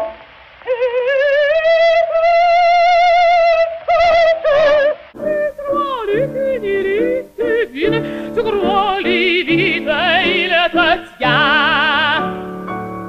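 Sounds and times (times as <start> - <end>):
operatic woman singing with vibrato: 0.6 - 12.6
piano accompaniment: 5.2 - 13.0.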